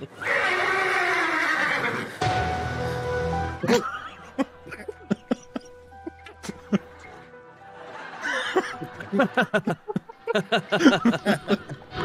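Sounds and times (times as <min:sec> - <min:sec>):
horse whinnying: 0:00.1 - 0:02.2.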